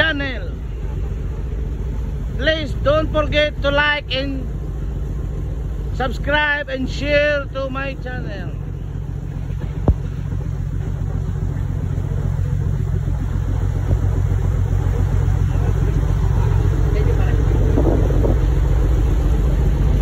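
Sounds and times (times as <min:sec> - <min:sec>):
boat engine running: 0:00.0 - 0:20.0
water noise: 0:00.0 - 0:20.0
wind: 0:00.0 - 0:20.0.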